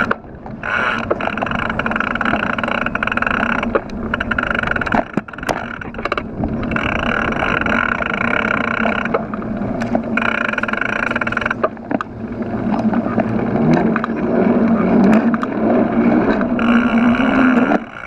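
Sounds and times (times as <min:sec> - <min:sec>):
bike tyre rumble on asphalt: 0:00.0 - 0:18.0
bicycle freehub ratchet buzz: 0:06.7 - 0:09.1.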